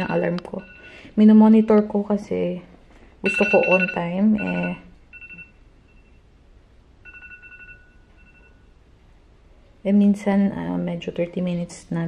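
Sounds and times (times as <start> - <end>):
faint phone alarm beeping: 0.0 - 1.2, 3.2 - 6.3, 7.0 - 8.8.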